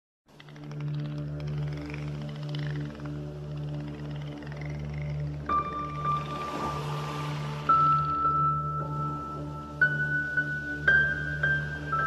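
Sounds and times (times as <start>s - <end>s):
dolphins clicking: 0.3s - 9.4s
ambient music drone: 0.3s - 12.0s
dolphins whistling: 1.2s - 9.7s.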